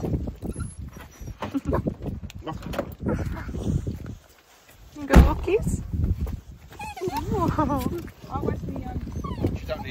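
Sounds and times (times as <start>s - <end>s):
small dog whining yips: 0.4s - 1.8s, 6.8s - 7.9s, 9.0s - 9.9s.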